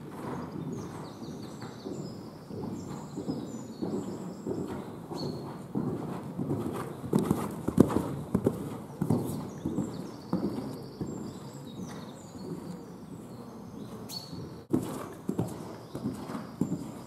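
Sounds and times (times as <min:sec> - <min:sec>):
horse hoofbeats on sand: 0:00.0 - 0:17.0.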